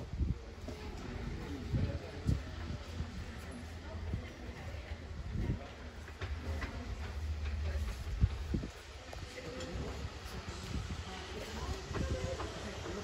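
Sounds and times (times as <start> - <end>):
people talking quietly: 0.0 - 13.0
steam locomotive rumbling: 0.0 - 13.0.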